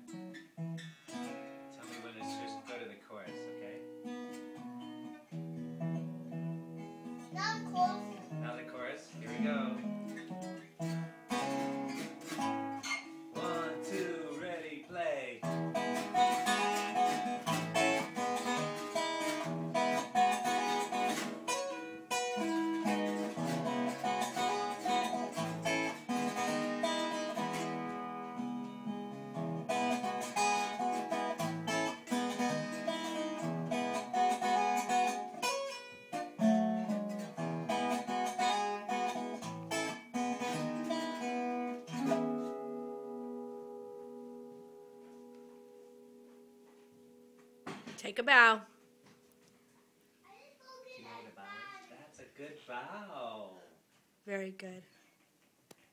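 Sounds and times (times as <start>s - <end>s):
acoustic guitar strumming chords: 0.0s - 49.2s.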